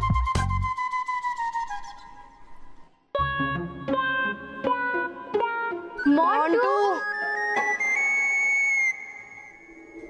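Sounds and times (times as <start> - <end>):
comic whistle sound effect: 7.1 - 10.0.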